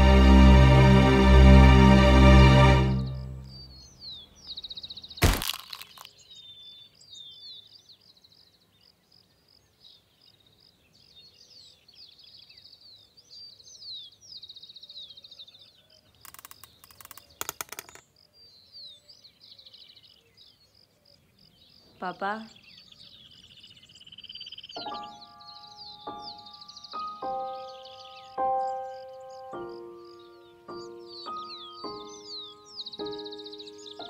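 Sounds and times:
songbirds chirping: 0.0s - 34.0s
sharp crack: 5.2s - 6.1s.

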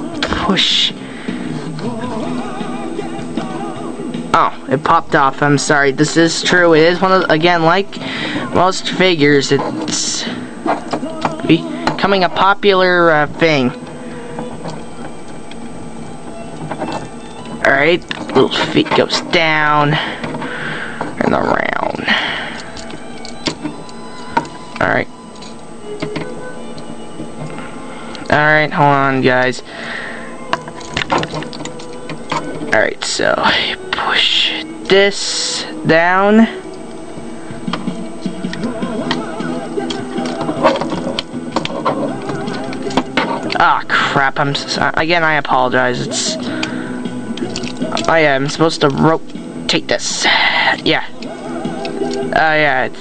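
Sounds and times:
background music: 0.0s - 53.0s.

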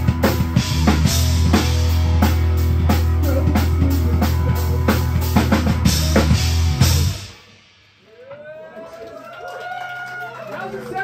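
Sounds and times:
rock band final chord: 0.0s - 7.6s
audience whooping and cheering: 3.1s - 7.2s, 8.0s - 11.0s.

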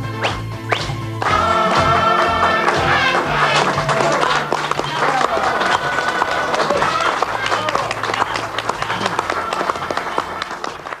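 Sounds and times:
wordless voices: 1.3s - 10.3s.

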